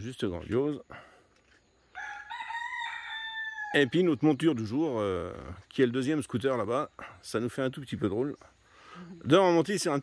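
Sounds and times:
rooster crowing: 1.9s - 3.9s.

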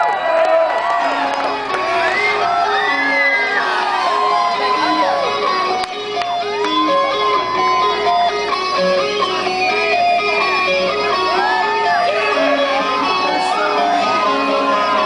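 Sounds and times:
rock music with electric guitar: 0.9s - 15.0s.

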